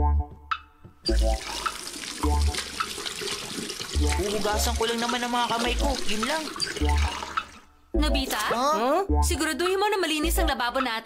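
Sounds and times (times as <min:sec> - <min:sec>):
water running from tap: 0:01.1 - 0:07.7
water splashing over hands: 0:01.2 - 0:07.7.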